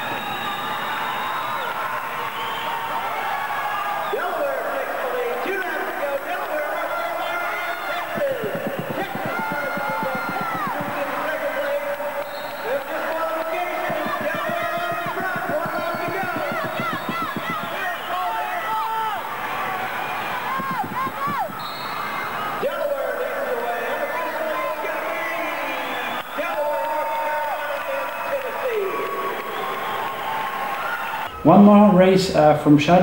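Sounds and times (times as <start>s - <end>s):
crowd voices and shouts: 0.0s - 33.0s
skate wheels squealing: 5.5s - 22.7s
low knocks of skates: 8.0s - 18.3s, 20.2s - 21.7s.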